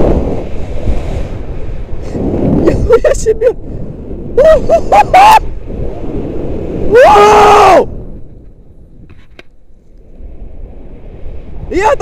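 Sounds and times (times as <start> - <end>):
wind on microphone: 0.0 - 12.0
man yelling: 6.9 - 7.9, 11.7 - 12.0.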